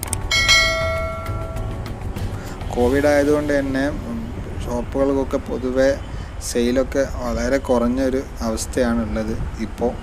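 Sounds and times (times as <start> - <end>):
bell chime ringing: 0.3 - 1.8.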